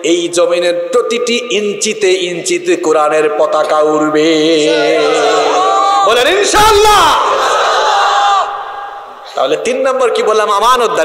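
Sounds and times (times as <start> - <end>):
man shouting through a pa system: 4.6 - 7.4.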